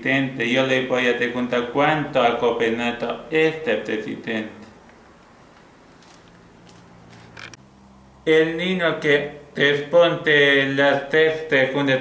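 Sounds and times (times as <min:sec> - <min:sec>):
handling creaks and clicks: 0:05.6 - 0:07.6.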